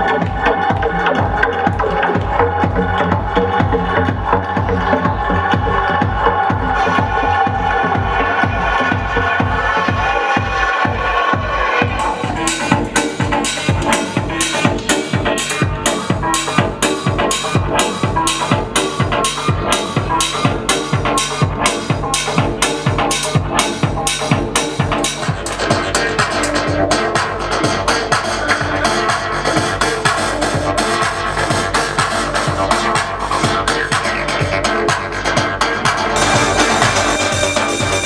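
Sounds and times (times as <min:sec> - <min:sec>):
dense synth layer: 0:00.0 - 0:38.0
electronic dance music: 0:00.0 - 0:38.0
kick and hi-hat beat: 0:00.0 - 0:38.0.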